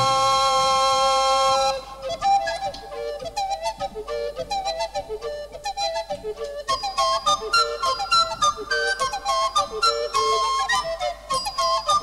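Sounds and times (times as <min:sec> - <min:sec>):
recorders playing: 0:00.0 - 0:01.5.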